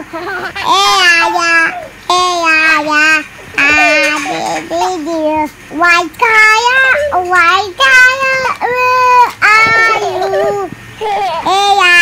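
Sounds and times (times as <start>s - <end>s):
child singing: 0.7s - 12.0s.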